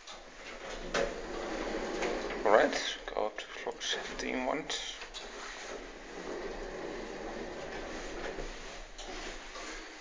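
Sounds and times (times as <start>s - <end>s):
elevator doors sliding: 0.0s - 10.0s.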